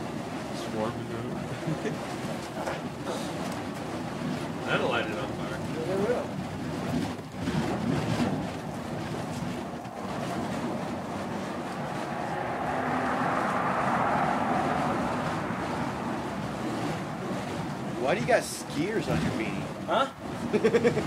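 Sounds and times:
whooshing flames of fire poi: 0:00.0 - 0:21.0.

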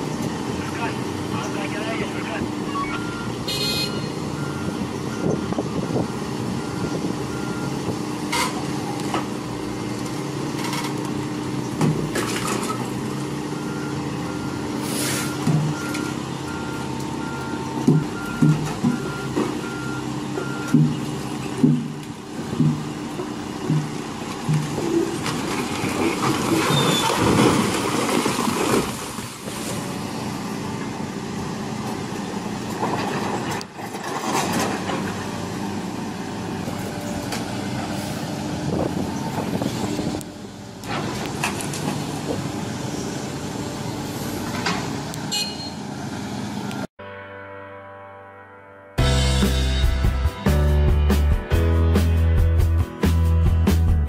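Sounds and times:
excavator diesel engine running: 0:00.0 - 0:46.9
beeping alarm: 0:02.7 - 0:05.5, 0:45.3 - 0:45.8.

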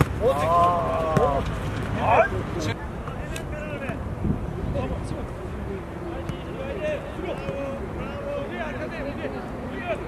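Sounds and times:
people shouting: 0:00.2 - 0:01.4
wind rumble on microphone: 0:04.0 - 0:05.4.

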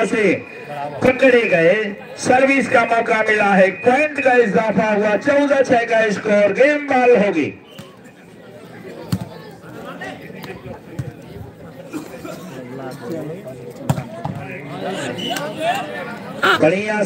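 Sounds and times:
spectators chatting: 0:00.0 - 0:17.0.

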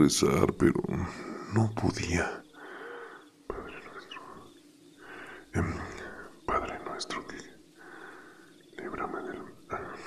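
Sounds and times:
person whispering: 0:00.8 - 0:02.6, 0:03.5 - 0:10.0.

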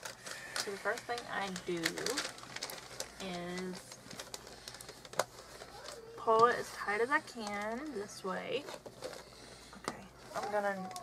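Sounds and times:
wrapping paper rustling: 0:00.0 - 0:11.0.

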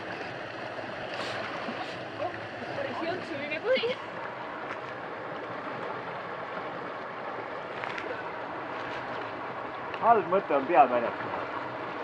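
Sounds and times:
stream water rushing: 0:00.0 - 0:12.0.

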